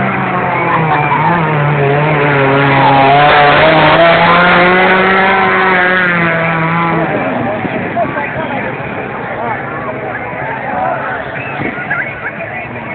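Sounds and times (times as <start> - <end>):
engine running at high revs: 0.0 - 12.9.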